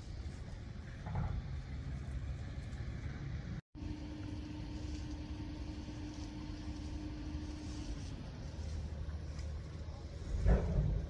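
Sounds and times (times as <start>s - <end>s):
vehicle engine rumbling: 0.0s - 11.0s
steady hum: 1.6s - 11.0s.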